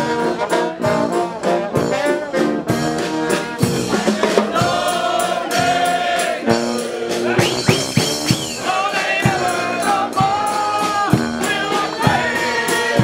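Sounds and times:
brass band playing: 0:00.0 - 0:13.0
steady drum beat: 0:00.2 - 0:13.0.

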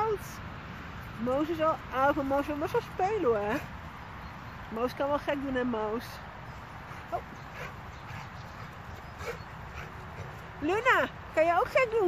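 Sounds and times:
paws moving on wet grass: 0:00.0 - 0:12.0
dogs panting: 0:02.2 - 0:04.6, 0:06.0 - 0:12.0.

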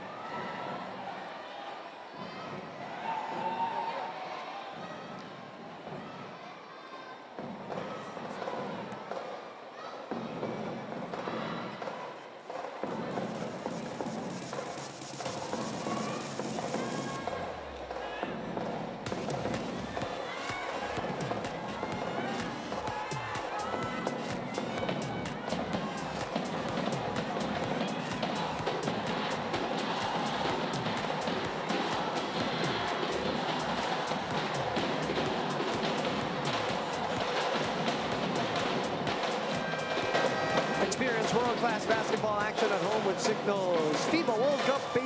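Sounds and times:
crowd voices: 0:00.0 - 0:45.0
rapid sharp claps or bangs: 0:11.0 - 0:17.9, 0:18.5 - 0:45.0
music over sound system: 0:12.9 - 0:17.9, 0:18.5 - 0:45.0
high hiss: 0:13.3 - 0:17.2.

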